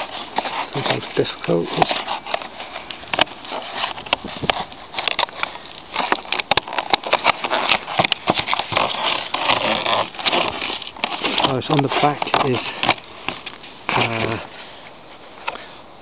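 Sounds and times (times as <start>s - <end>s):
plastic packaging crinkling: 0.0s - 15.7s.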